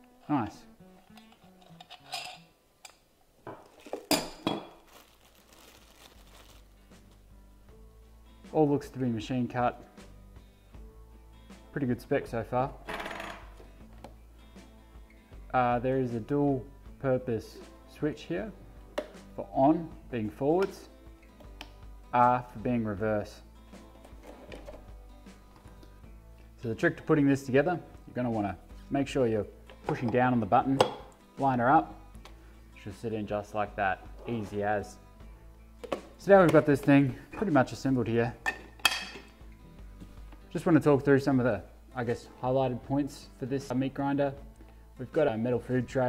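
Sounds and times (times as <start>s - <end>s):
quiet background music: 0.0s - 46.0s
metal parts clinking: 1.0s - 2.4s.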